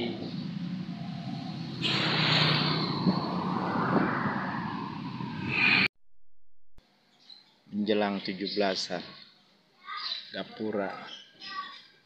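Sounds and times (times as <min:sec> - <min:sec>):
vehicle passing by: 0:00.2 - 0:05.9.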